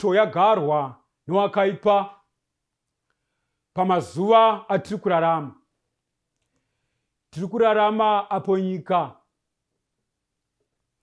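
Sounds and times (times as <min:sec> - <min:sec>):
man speaking: 0:00.0 - 0:02.3, 0:03.8 - 0:05.6, 0:07.3 - 0:09.3.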